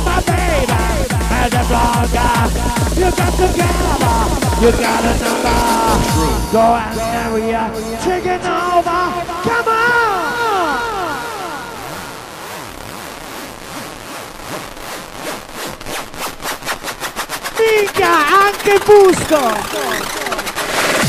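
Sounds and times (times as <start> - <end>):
effected voice shouting: 0.0 - 12.4, 17.6 - 20.6
echoing sound sliding down in pitch: 2.5 - 15.0.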